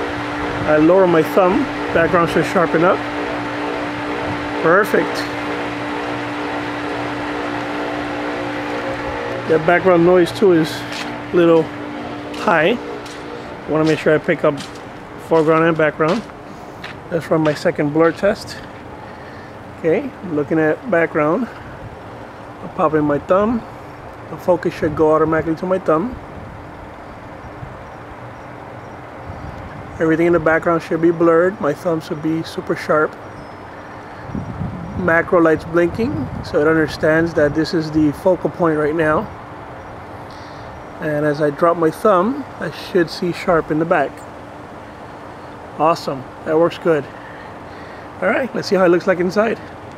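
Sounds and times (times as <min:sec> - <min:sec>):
outdoor background hiss: 0:00.0 - 0:49.9
steady background hum: 0:00.0 - 0:49.9
person speaking: 0:00.6 - 0:03.1, 0:04.6 - 0:05.6, 0:08.5 - 0:16.5, 0:17.1 - 0:18.8.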